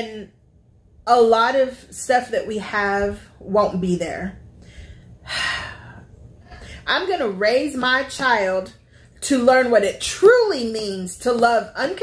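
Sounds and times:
woman breathing out: 4.6 - 6.8.

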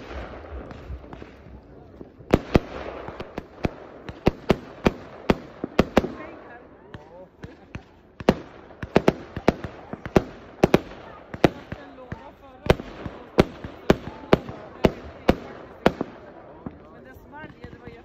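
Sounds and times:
fireworks bangs: 0.0 - 18.0.

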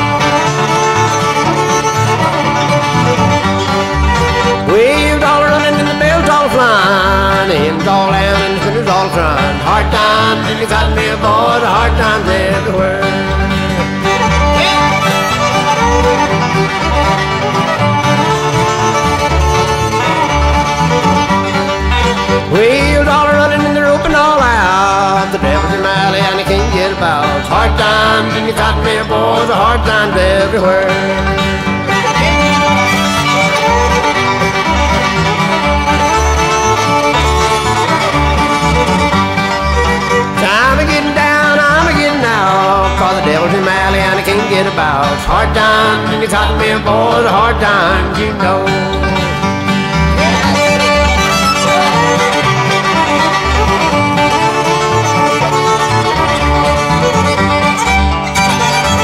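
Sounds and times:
banjo: 0.0 - 59.0
fiddle melody: 0.0 - 59.0
strummed guitars: 0.0 - 59.0.

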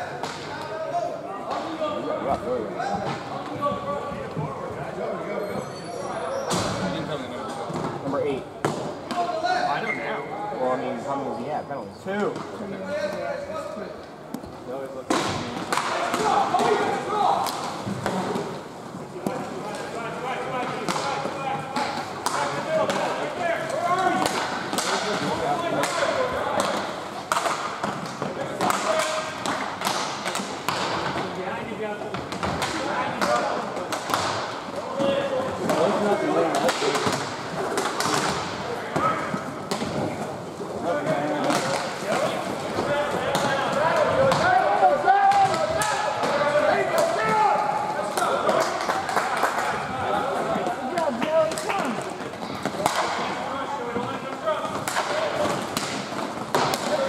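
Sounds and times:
voices of players and onlookers: 0.0 - 57.0
sticks and puck clacking: 0.1 - 0.7, 14.3 - 57.0.

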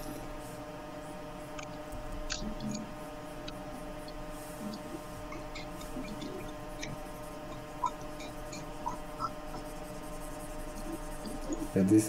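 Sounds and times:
low electrical hum: 0.0 - 12.0
soft scratching: 0.0 - 12.0.

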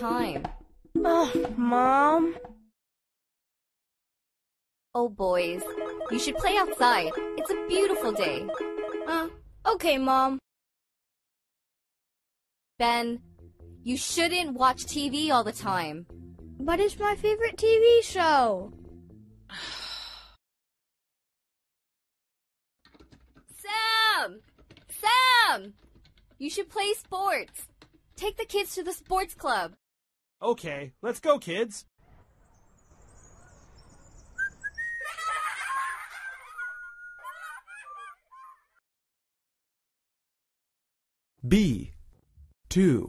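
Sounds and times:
breathy sigh: 19.5 - 20.4
whistle-like tones and chirps: 33.2 - 35.2, 36.5 - 37.2.

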